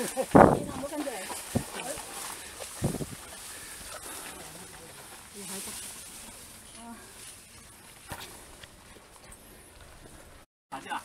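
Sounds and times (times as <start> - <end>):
footsteps on dirt trail: 0.0 - 10.4.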